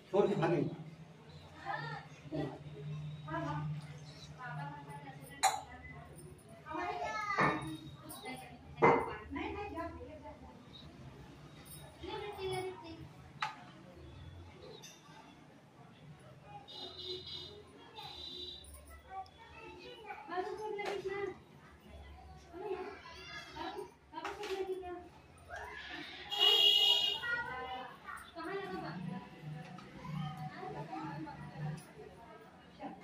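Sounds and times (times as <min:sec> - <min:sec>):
children talking: 0:01.2 - 0:33.0.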